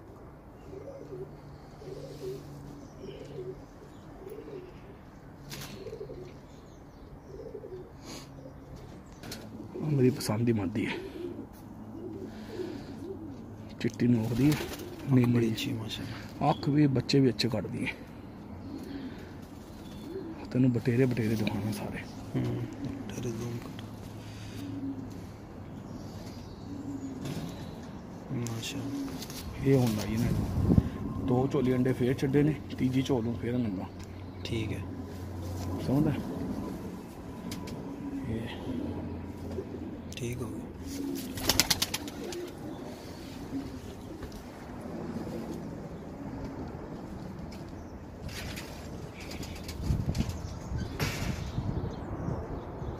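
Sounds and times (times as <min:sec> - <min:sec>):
pigeons cooing faintly: 0:00.0 - 0:52.9.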